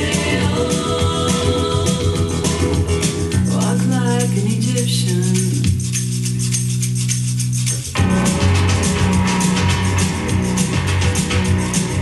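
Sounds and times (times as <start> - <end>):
shaken percussion rattle: 0.0 - 12.0.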